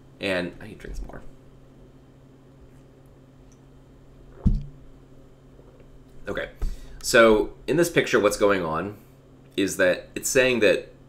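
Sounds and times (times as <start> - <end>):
low steady hum: 0.0 - 11.0
dull thump: 4.4 - 4.8.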